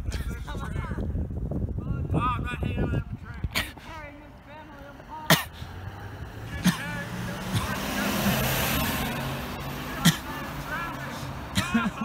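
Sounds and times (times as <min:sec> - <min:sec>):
van driving past: 0:04.8 - 0:12.0.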